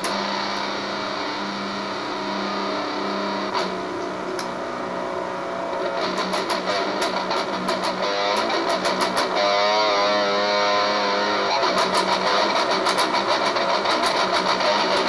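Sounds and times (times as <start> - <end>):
distorted electric guitar: 0.0 - 15.0.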